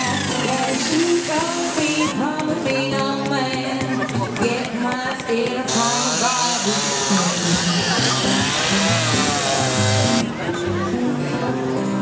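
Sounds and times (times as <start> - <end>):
song playing: 0.0 - 3.1
chainsaw cutting wood: 5.7 - 10.2.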